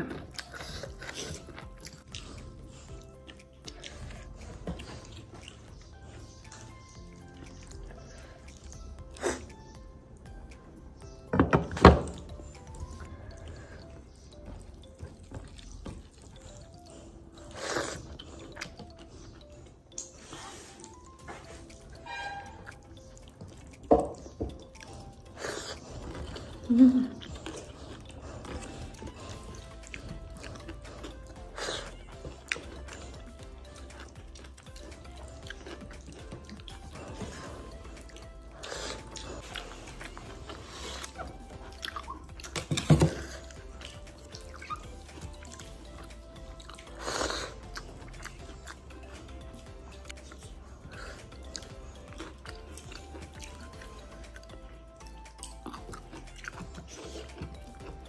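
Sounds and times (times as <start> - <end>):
person chewing: 0.0 - 58.0
soft background music: 0.0 - 58.0
wet mouth clicks: 0.0 - 58.0.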